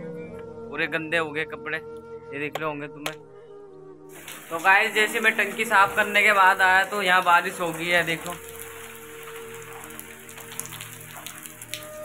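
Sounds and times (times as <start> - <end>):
rain on stone pavement: 4.1 - 12.0.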